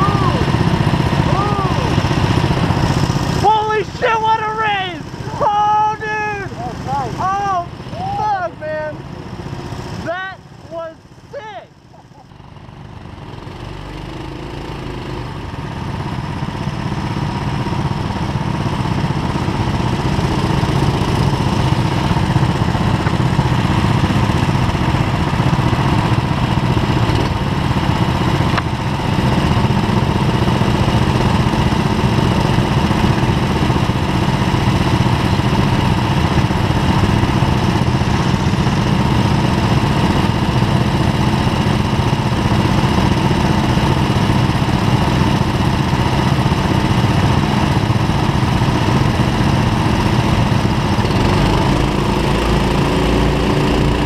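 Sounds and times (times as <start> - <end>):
go-kart engines racing: 0.0 - 54.0.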